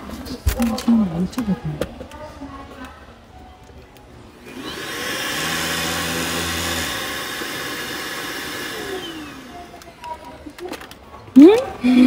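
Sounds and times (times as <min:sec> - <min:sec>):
handheld vacuum cleaner motor: 0:04.4 - 0:10.2.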